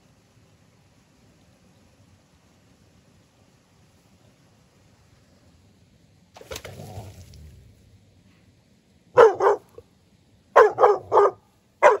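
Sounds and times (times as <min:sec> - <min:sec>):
dog barking: 0:09.2 - 0:09.8, 0:10.6 - 0:12.0.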